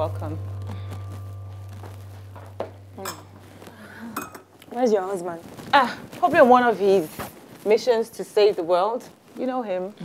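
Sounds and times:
low steady drone: 0.0 - 4.5
tableware clinking: 2.3 - 4.7.

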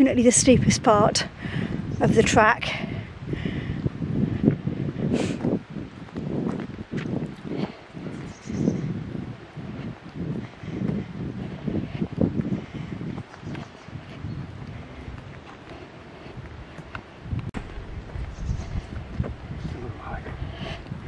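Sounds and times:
wind buffeting microphone: 0.0 - 21.0
footsteps on tarmac: 2.9 - 21.0.

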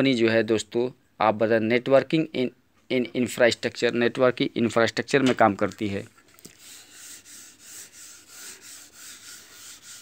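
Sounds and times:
chalk scratching on blackboard: 6.5 - 10.0.

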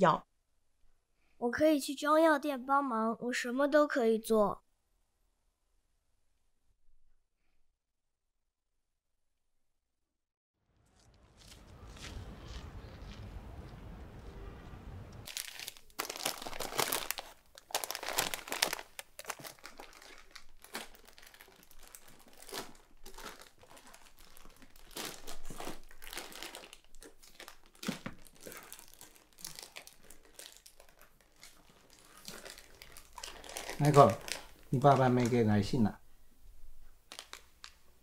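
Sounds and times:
packaging rustling and crinkling: 15.2 - 35.8, 37.1 - 37.8.

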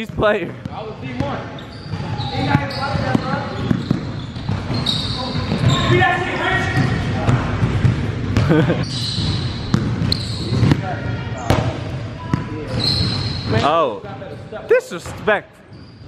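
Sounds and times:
basketball bouncing on hardwood: 0.6 - 4.8, 9.2 - 10.8.

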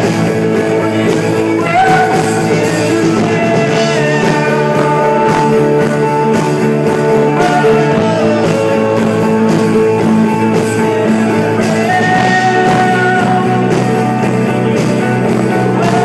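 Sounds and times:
held lead guitar notes: 0.0 - 16.0
live rock band playing: 0.0 - 16.0.

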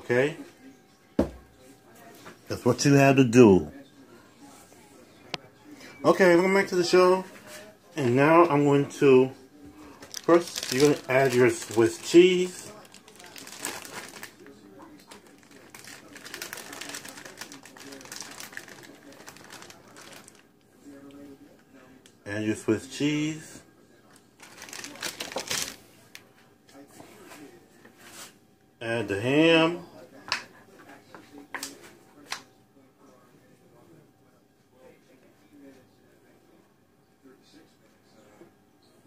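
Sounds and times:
plastic packaging crinkling: 10.0 - 20.5, 24.4 - 25.8.

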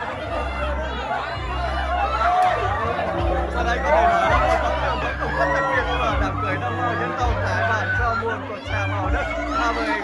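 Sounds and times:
background music: 0.0 - 10.0
crowd talking and calling out: 0.0 - 10.0.

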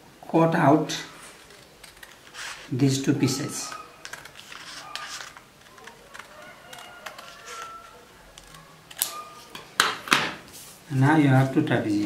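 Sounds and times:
paper rustling and crackling: 1.2 - 2.8, 3.4 - 9.5
scissors snipping paper: 1.4 - 2.7, 3.4 - 9.3.

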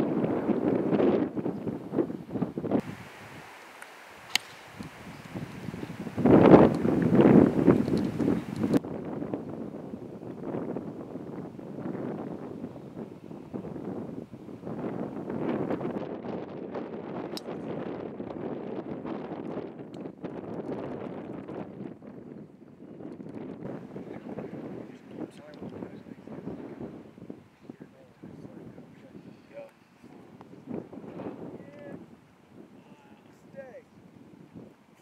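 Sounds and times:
wind buffeting microphone: 0.0 - 3.6, 4.2 - 35.0.

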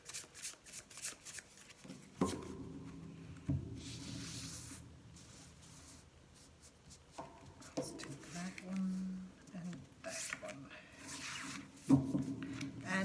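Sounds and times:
cards being shuffled: 0.0 - 1.8.

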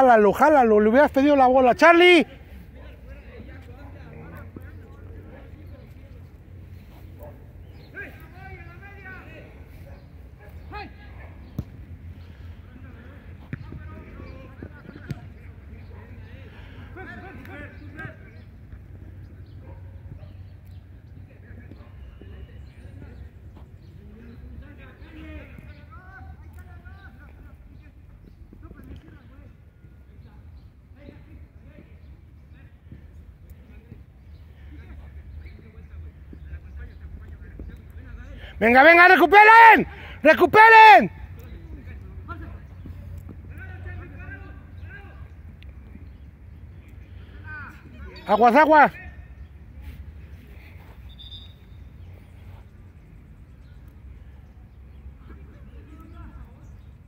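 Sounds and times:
distant shouts of footballers: 0.0 - 6.0, 6.9 - 18.6, 38.2 - 46.0, 47.1 - 52.1
ball being kicked: 13.4 - 14.0.

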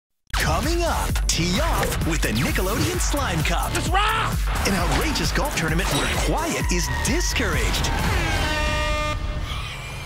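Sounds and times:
background music: 0.3 - 9.5
air horn blast: 7.9 - 9.6.

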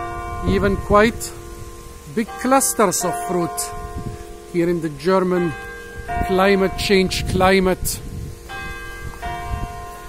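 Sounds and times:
church bell ringing: 0.0 - 10.0.

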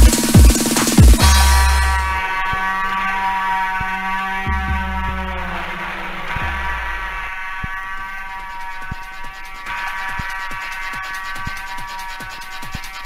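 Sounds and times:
buzzy synth chord: 0.0 - 13.0
deep bass swells: 1.2 - 8.2.

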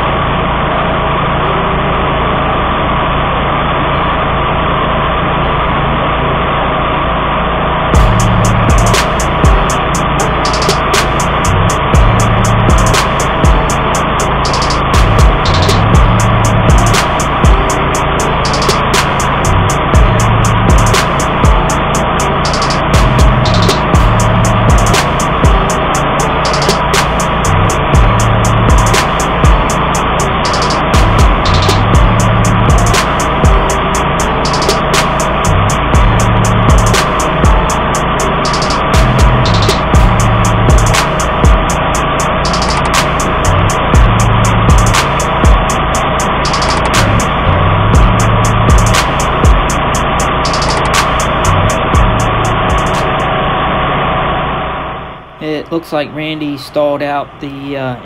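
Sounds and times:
mower engine running: 0.0 - 58.0
sharp ticks: 8.0 - 17.8, 18.4 - 29.8, 30.4 - 33.8, 34.4 - 37.8, 38.4 - 47.3, 48.0 - 52.1.

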